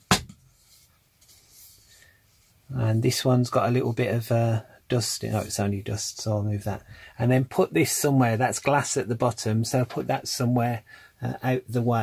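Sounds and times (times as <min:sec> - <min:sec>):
faint rubbing: 0:00.5 - 0:06.0.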